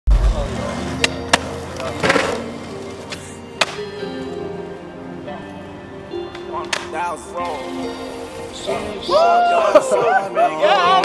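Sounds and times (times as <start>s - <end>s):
skateboard rolling on concrete: 0.2s - 7.3s
sharp skateboard clacks: 0.9s - 2.5s, 3.1s - 3.8s
rap music with heavy bass: 6.9s - 11.0s.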